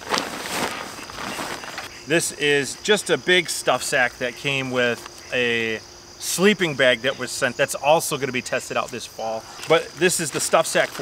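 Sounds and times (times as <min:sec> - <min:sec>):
fabric rustling and crinkling: 0:00.0 - 0:01.9
crickets chirping: 0:00.0 - 0:11.0.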